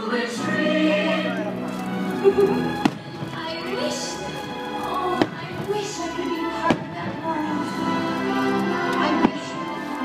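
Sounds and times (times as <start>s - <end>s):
soundtrack music: 0.2s - 10.0s.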